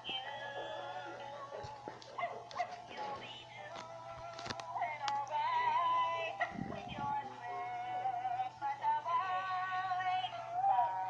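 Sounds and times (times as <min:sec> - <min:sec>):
synthesized singing with music: 0:00.0 - 0:11.0.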